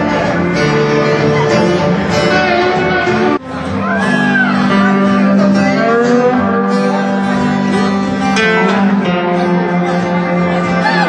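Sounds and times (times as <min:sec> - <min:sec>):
strummed acoustic guitars: 0:00.0 - 0:11.0.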